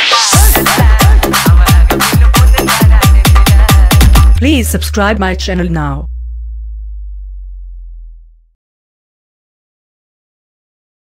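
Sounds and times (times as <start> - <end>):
deep electronic bass tone: 3.4 - 8.6.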